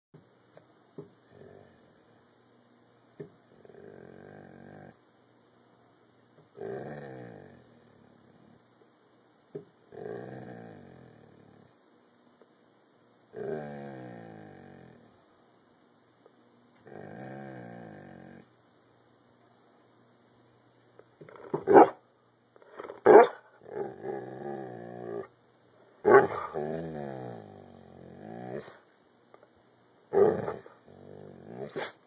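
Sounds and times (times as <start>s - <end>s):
dog growling vocalizations: 1.2s - 1.9s, 3.5s - 5.0s, 6.5s - 8.6s, 9.9s - 11.8s, 13.3s - 15.2s, 16.8s - 18.5s, 22.7s - 25.3s, 26.0s - 28.8s, 30.1s - 32.0s.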